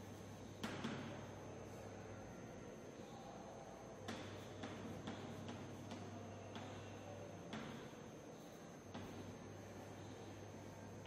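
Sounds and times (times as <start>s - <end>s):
chalk tapping on chalkboard: 4.1s - 6.9s.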